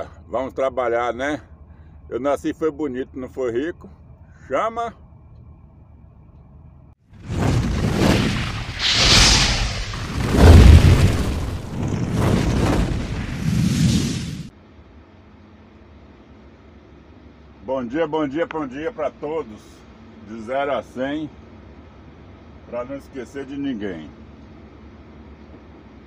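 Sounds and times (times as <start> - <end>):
faint steady hum: 0.0 - 7.0, 14.5 - 26.0
booming whooshes and bursts: 7.2 - 14.5.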